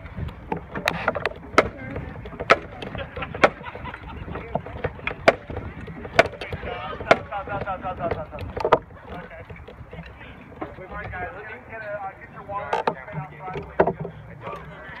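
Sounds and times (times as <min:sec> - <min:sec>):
sharp knocks or clicks: 0:00.2 - 0:03.7, 0:04.3 - 0:11.2, 0:12.7 - 0:14.2
indistinct chatter of voices: 0:00.8 - 0:15.0.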